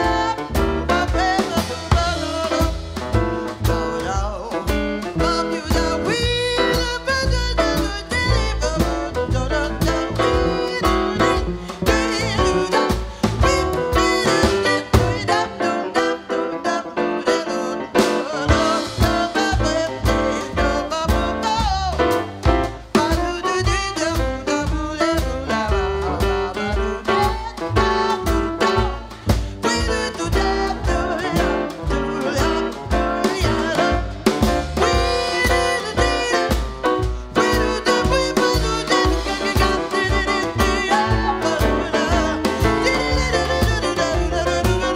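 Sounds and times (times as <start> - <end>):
bass: 0.0 - 44.9
drum kit: 0.0 - 44.9
grand piano: 0.0 - 44.9
horn line: 5.2 - 44.9.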